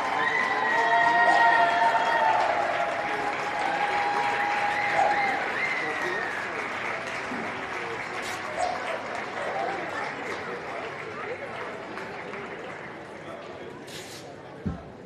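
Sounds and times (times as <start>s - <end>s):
audience applauding: 0.0s - 13.3s.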